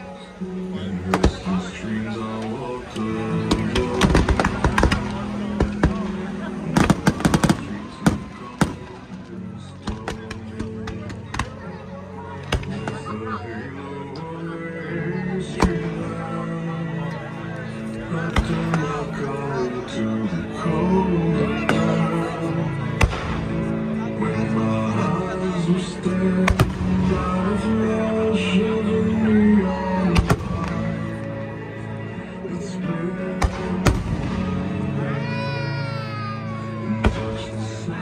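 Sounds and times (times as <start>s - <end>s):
loud background music: 0.0s - 38.0s
fireworks bursting: 3.5s - 9.1s.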